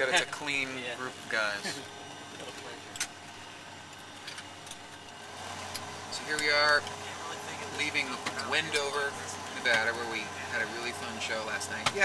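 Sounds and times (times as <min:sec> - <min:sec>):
plane cabin hum and hiss: 0:00.0 - 0:12.0.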